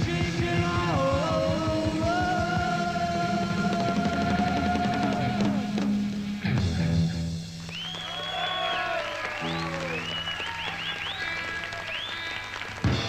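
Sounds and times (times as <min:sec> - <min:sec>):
amplified guitar and bass notes: 0:00.0 - 0:07.7
high whistles: 0:07.6 - 0:12.5
audience applause: 0:07.6 - 0:13.0.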